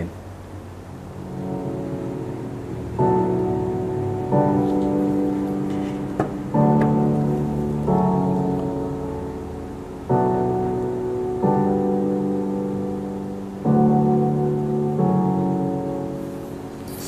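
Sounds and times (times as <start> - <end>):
slow sustained chords: 0.0 - 17.0.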